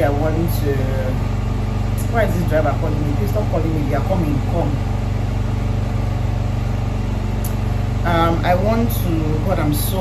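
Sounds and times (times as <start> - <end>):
low engine-like hum: 0.0 - 10.0.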